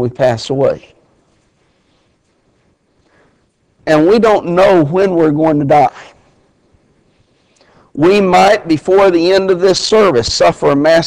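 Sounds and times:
man speaking: 0.0 - 1.0, 3.8 - 6.2, 8.0 - 11.0
faint breath: 3.0 - 3.6, 7.1 - 8.0.

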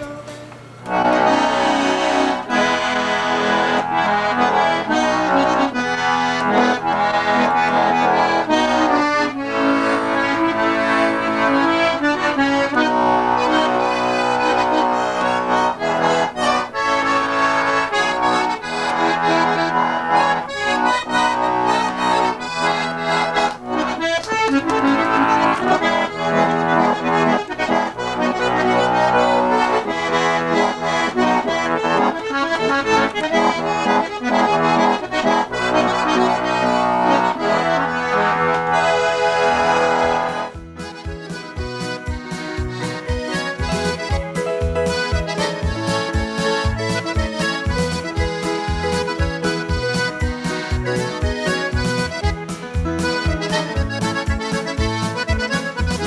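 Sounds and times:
button accordion dance tune: 0.0 - 56.0.

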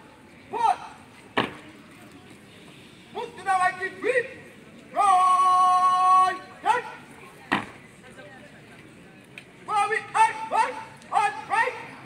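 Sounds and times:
man shouting marching calls: 0.4 - 1.1, 3.1 - 7.1, 9.7 - 12.0.

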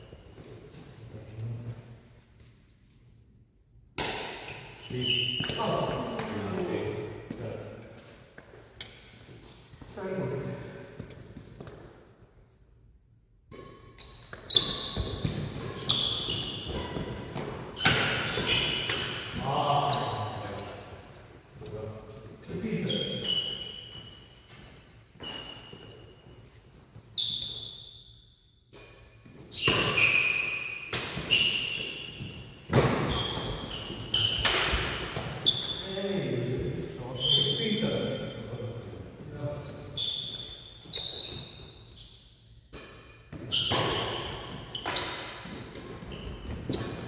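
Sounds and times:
rackets hitting shuttlecock: 4.0 - 4.7, 13.5 - 19.5, 28.7 - 35.4, 42.7 - 47.0
shoes squeaking on wooden floor: 4.5 - 11.8, 14.0 - 20.8, 22.8 - 27.9, 29.2 - 36.0, 39.3 - 42.2, 43.4 - 47.0.

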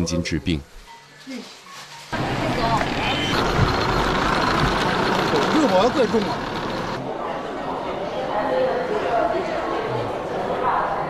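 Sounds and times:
traffic noise: 2.0 - 7.2
indistinct voices of passers-by: 2.1 - 11.0.

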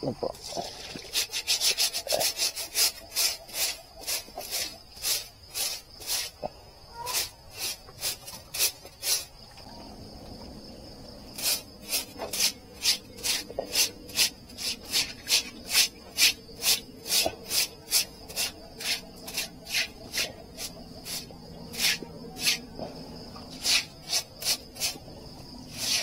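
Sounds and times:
broom scrubbing wet concrete: 0.4 - 6.4, 7.0 - 9.4, 11.4 - 26.0.

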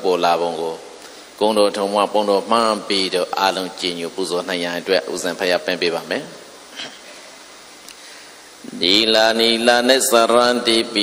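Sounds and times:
person chanting into a microphone: 8.6 - 11.0.

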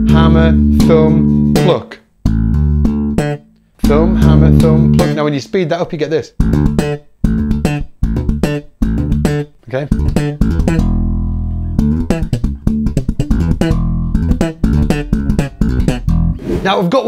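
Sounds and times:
slap bass guitar: 0.0 - 5.5, 6.3 - 16.4.

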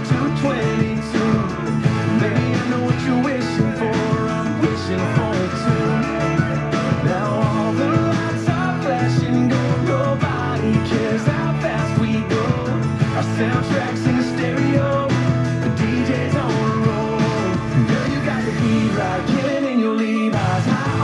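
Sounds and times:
country song on radio: 0.0 - 21.0.

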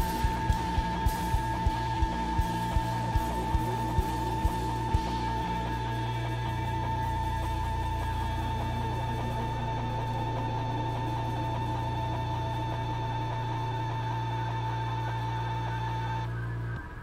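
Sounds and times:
electric guitars and bass drone: 0.0 - 17.0.

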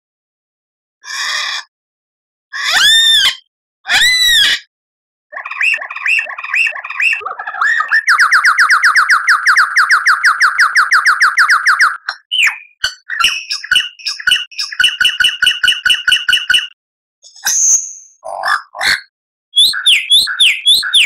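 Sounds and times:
songbird singing: 5.4 - 16.7, 19.6 - 21.0.

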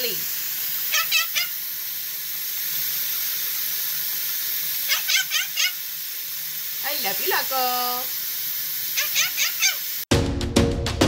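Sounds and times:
steady hiss: 0.0 - 10.1
parrot chirping: 0.7 - 1.8, 4.8 - 5.9, 8.8 - 10.0.

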